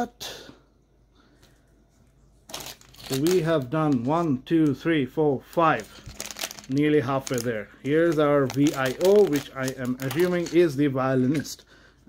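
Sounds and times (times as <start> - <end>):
rustling and clicking plastic pieces: 2.5 - 4.8, 5.8 - 11.6.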